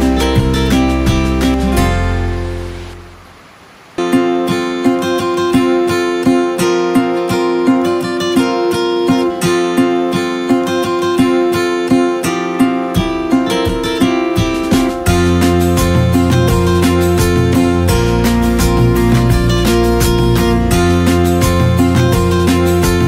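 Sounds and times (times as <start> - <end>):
acoustic guitar strumming: 0.0 - 3.3, 4.0 - 23.0.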